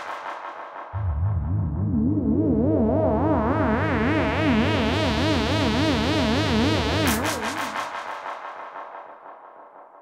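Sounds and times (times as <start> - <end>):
low bass pulse: 1.0 - 7.3.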